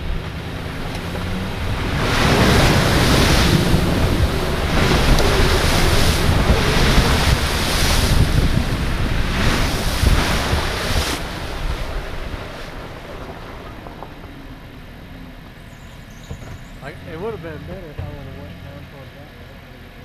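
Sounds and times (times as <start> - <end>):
loud rushing noise: 0.0 - 15.3
low rumble: 0.0 - 20.0
truck driving on muddy trail: 0.0 - 20.0.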